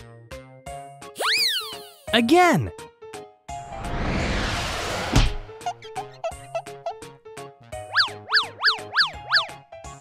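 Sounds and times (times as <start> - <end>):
cheerful background music: 0.0 - 4.0, 5.2 - 10.0
cartoon pitch sweeps: 1.2 - 2.0.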